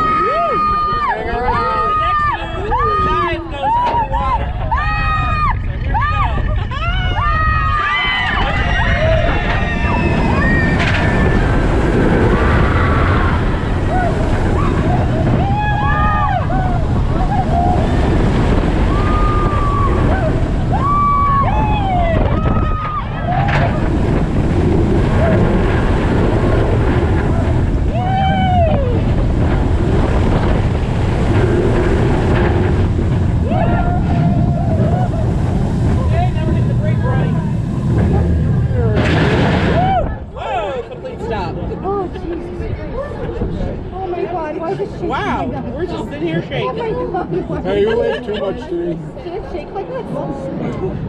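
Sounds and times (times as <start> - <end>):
riders whooping and screaming: 0.0 - 30.2, 30.9 - 40.8
wind and track roar: 0.0 - 51.0.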